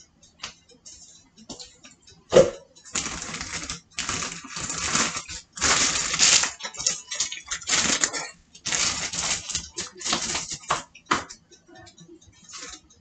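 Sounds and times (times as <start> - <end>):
kitchen items clattering: 2.3 - 11.3
plastic packaging rustling: 2.9 - 10.8.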